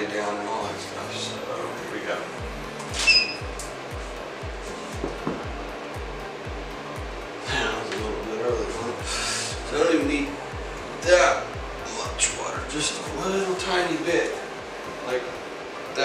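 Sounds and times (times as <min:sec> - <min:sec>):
background music with low beat: 0:00.0 - 0:16.0
short high beep: 0:03.0 - 0:03.5.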